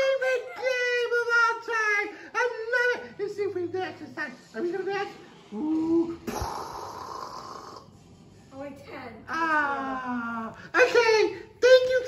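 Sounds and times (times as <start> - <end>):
wavering voice-like sound: 5.5 - 7.8.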